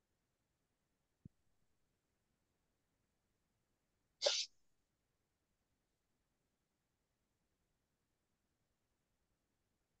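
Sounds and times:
person sneezing: 0:04.2 - 0:04.5.

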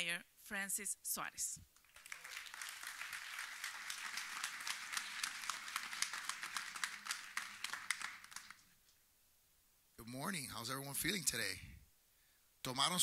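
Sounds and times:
audience applauding: 0:01.8 - 0:08.8.

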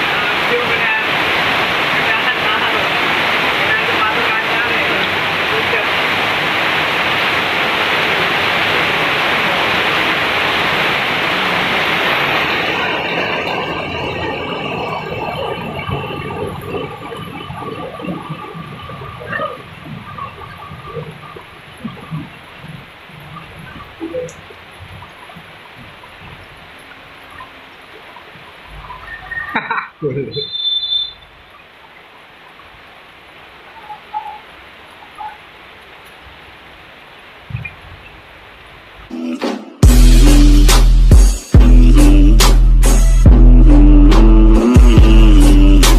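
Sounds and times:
heavy rain pouring: 0:00.0 - 0:45.9.

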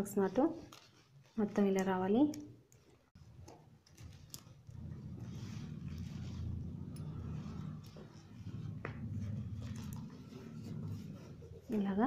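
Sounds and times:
plastic wire strips rubbing: 0:00.0 - 0:12.0
low steady rumble: 0:04.2 - 0:12.0.

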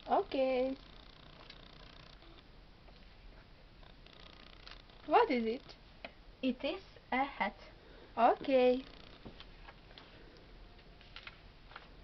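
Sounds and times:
paper cards rustling: 0:10.8 - 0:12.0.

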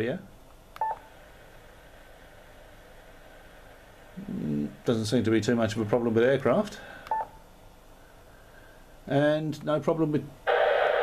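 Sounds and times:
radio receiver hiss: 0:00.8 - 0:07.3, 0:10.4 - 0:11.0.

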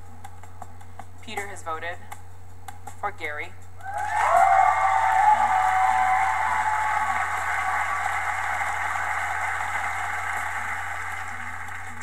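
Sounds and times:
audience cheering and shouting: 0:03.8 - 0:11.1.

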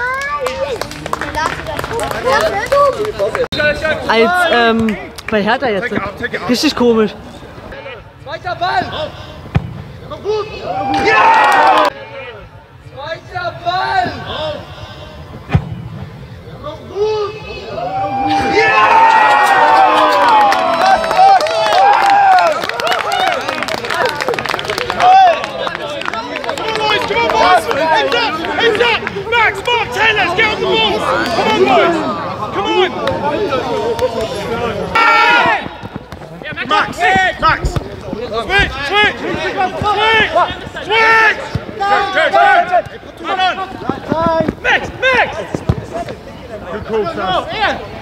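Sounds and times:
scattered clapping: 0:00.0 - 0:03.6, 0:04.8 - 0:05.5, 0:20.0 - 0:29.9
people shouting and cheering: 0:10.2 - 0:12.5, 0:16.9 - 0:46.2
ball being kicked: 0:45.5 - 0:46.0.

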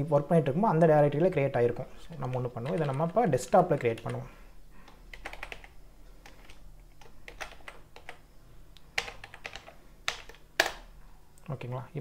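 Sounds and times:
keyboard typing clicks: 0:02.1 - 0:03.2, 0:04.8 - 0:08.2, 0:08.8 - 0:10.8.

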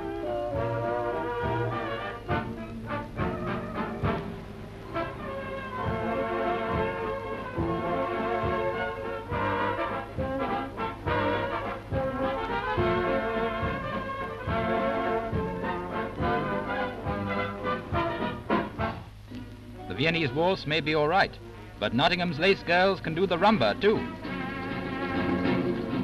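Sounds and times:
orchestra playing a waltz: 0:00.0 - 0:19.0, 0:19.9 - 0:26.0.

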